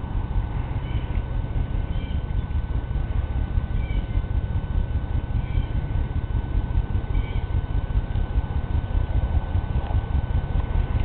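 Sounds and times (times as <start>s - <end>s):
wind buffeting microphone: 0.0s - 11.0s
high-pitched animal calls: 3.8s - 4.2s, 5.4s - 5.8s, 7.1s - 7.6s.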